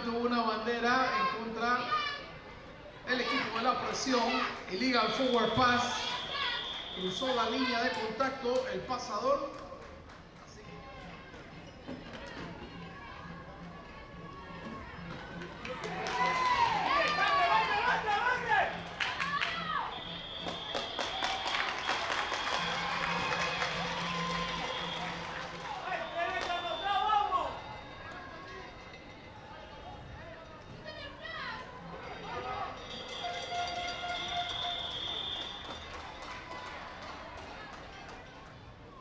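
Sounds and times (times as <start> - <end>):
voices shouting: 3.1 - 8.0, 12.1 - 28.8, 30.8 - 35.6
background music: 6.8 - 37.5.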